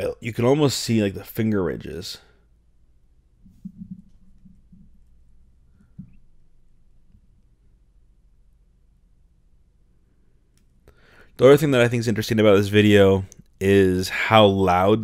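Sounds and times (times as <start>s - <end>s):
soft low thuds: 3.4s - 7.4s.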